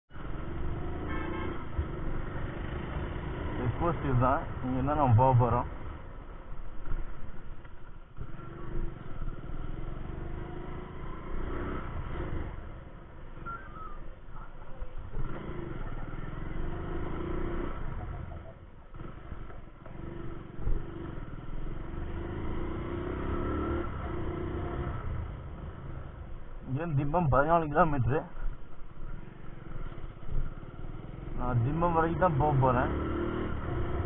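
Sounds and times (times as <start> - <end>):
motorcycle engine accelerating: 0.1 - 34.0.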